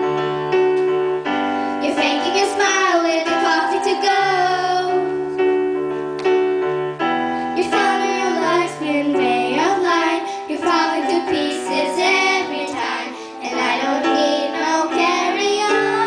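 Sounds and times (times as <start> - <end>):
electronic keyboard: 0.0 - 16.0
children singing pop song: 1.8 - 5.1, 7.6 - 16.0.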